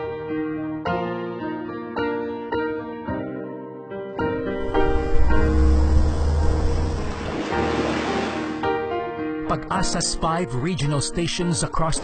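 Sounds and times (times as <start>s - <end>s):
background music chords: 4.1s - 11.9s
sea waves washing: 4.4s - 8.9s.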